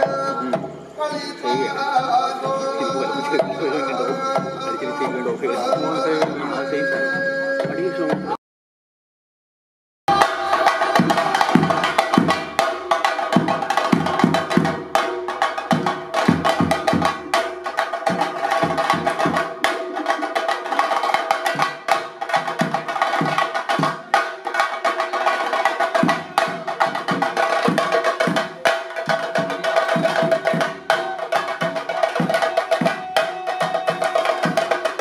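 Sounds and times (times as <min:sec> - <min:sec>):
deep drum beats: 0:00.0 - 0:08.4, 0:10.1 - 0:35.0
drum ensemble fast stick strokes: 0:10.1 - 0:35.0.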